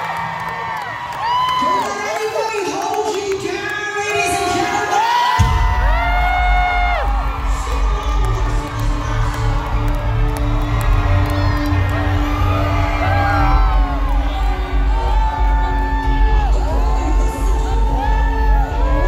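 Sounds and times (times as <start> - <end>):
crowd cheering and whooping: 0.0 - 3.4, 4.0 - 19.0.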